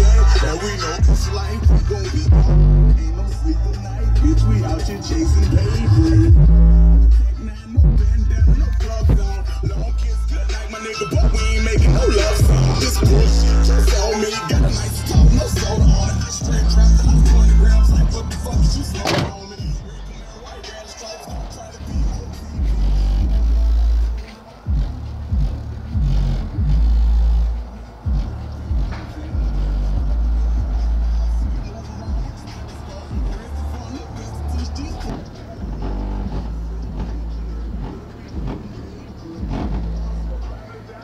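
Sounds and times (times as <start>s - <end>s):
deep bass notes: 0.0s - 20.6s, 21.3s - 41.0s
rap music through car subwoofers: 0.0s - 41.0s.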